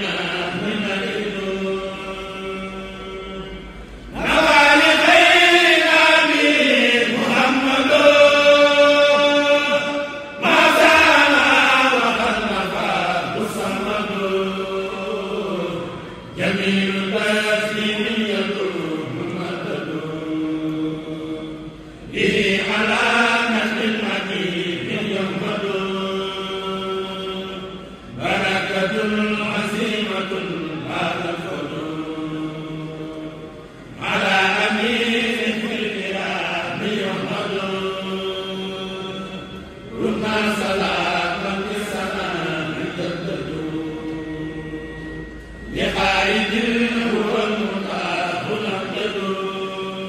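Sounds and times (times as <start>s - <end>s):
men chanting unaccompanied: 0.0s - 50.0s.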